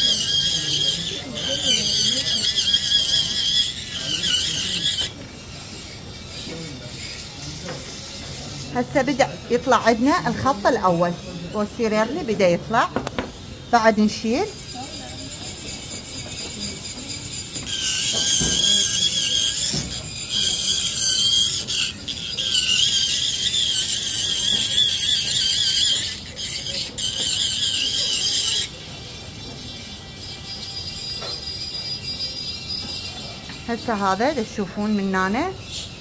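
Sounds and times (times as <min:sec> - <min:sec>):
dental handpiece grinding whine: 0:00.0 - 0:36.0.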